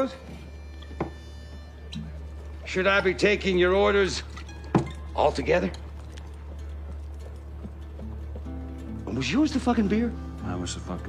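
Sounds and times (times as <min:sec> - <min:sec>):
horse hooves clip-clopping: 0:00.0 - 0:11.0.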